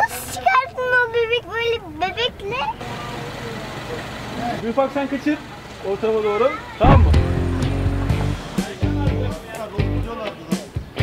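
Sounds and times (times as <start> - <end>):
low hum of distant traffic: 0.0 - 10.1.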